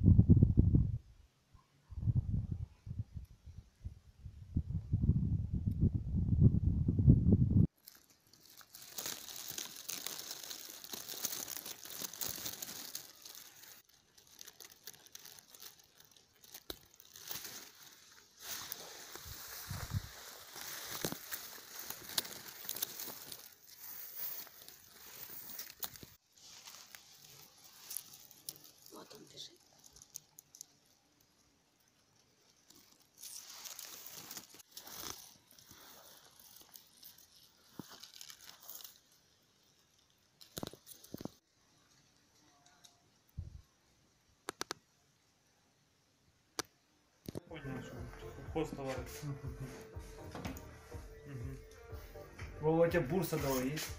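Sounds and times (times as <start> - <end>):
rustle of dry grass: 7.7 - 43.2.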